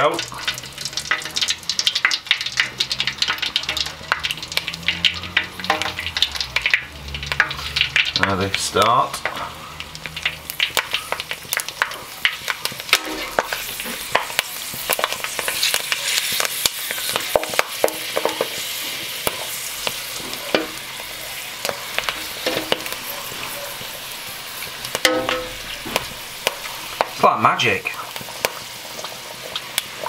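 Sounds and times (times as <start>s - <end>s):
pork skins sizzling in hot oil: 0.0s - 30.0s.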